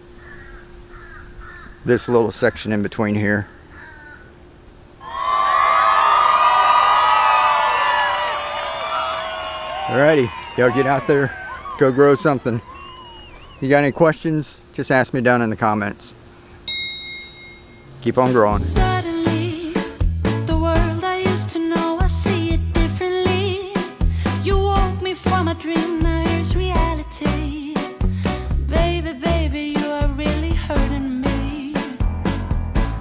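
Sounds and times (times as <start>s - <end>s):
crows cawing: 0.1s - 2.7s, 3.4s - 4.4s
bright bell-like ding: 16.7s - 17.9s.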